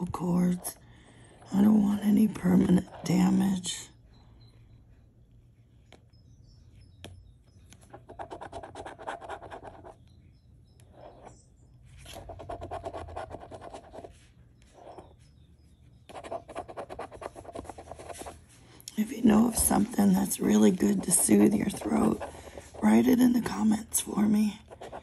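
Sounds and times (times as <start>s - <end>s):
coin scratching lottery ticket: 7.9s - 10.0s, 12.0s - 14.2s, 16.1s - 18.3s, 19.4s - 25.0s.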